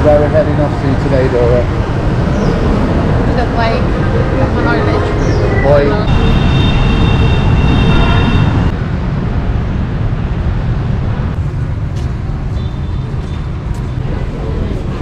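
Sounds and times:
street traffic rumble: 0.0s - 15.0s
high whine: 1.6s - 10.2s.

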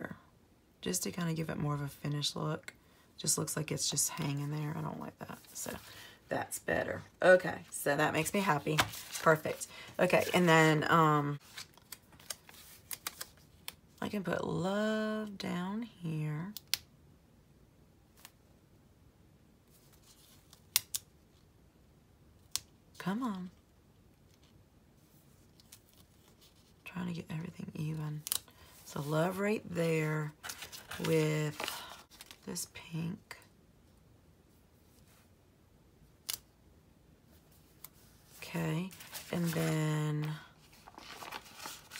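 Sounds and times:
paper rustle: 8.4s - 10.5s, 11.3s - 13.6s, 30.3s - 32.4s, 37.8s - 41.9s.

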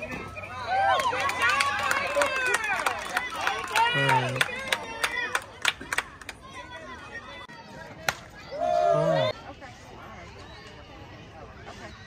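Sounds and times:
crowd shouting and cheering: 0.0s - 9.4s
people clapping: 0.7s - 6.7s, 8.0s - 8.3s.

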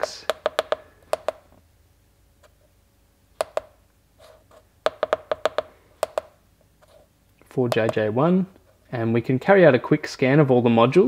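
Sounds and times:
keypad buttons clicking: 0.3s - 1.4s, 3.4s - 3.7s.

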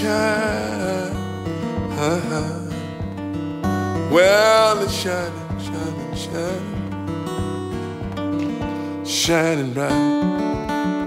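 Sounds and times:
acoustic guitar playing blues: 0.0s - 11.0s
plucked bass notes: 0.0s - 11.0s.

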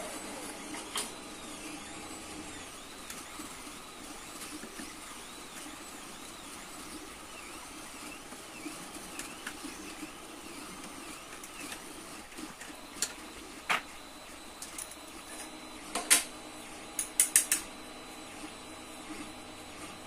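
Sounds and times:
stepper motors whining chirps: 0.0s - 15.8s.

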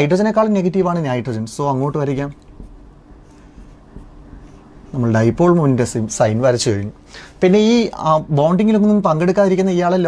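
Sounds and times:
people speaking: 0.0s - 2.4s, 4.9s - 10.0s.

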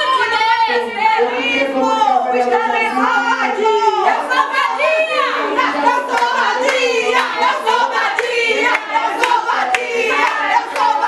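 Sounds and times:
voices singing: 0.0s - 11.0s
rhythmic hand-clapping: 5.6s - 11.0s.

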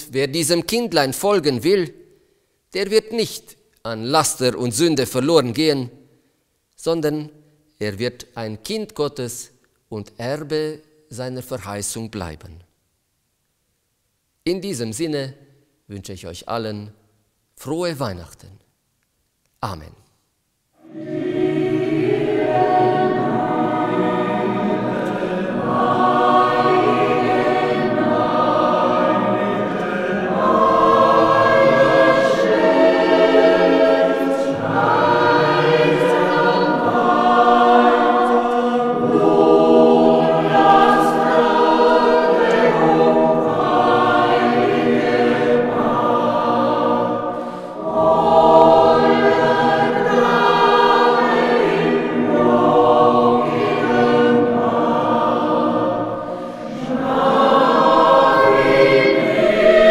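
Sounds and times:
mixed choir singing: 20.8s - 59.9s.

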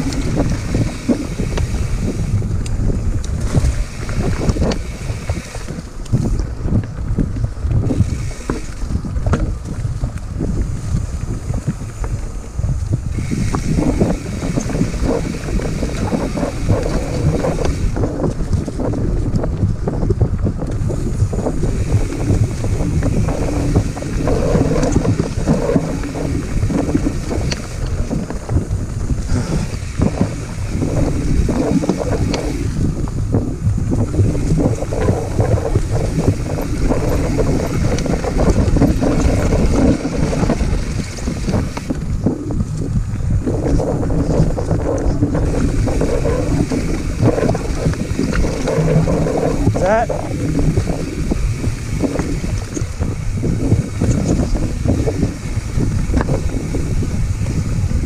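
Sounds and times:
bike rattling on rough trail: 0.0s - 58.0s
wind rumbling on microphone: 0.0s - 58.0s.

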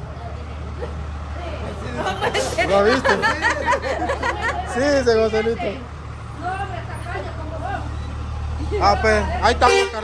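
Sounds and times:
engine rumbling: 0.0s - 10.0s.

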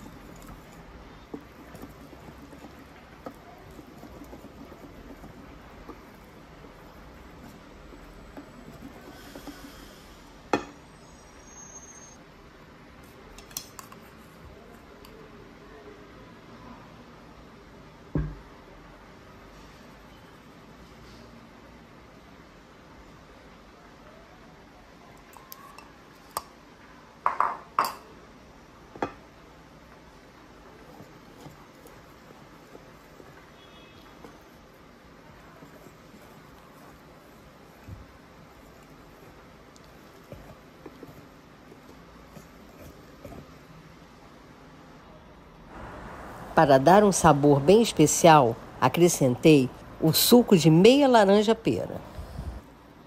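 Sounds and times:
whisk stirring batter: 0.0s - 10.6s, 29.7s - 44.3s.

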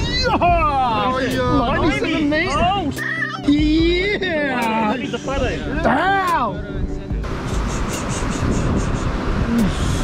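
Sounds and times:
faint background music: 0.0s - 10.0s
wind rumbling on microphone: 6.6s - 10.0s
surf washing: 7.2s - 10.0s.

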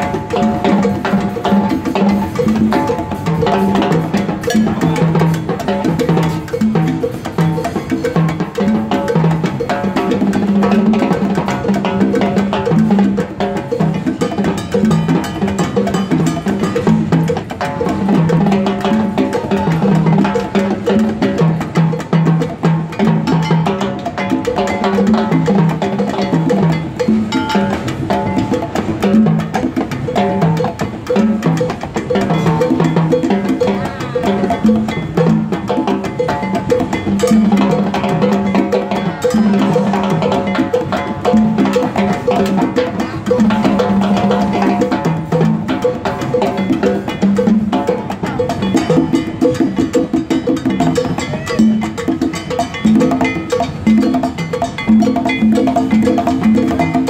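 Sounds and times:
block beaten with stick: 0.0s - 57.0s
congas played by hand: 0.0s - 57.0s
cymbals struck with sticks: 0.0s - 57.0s.

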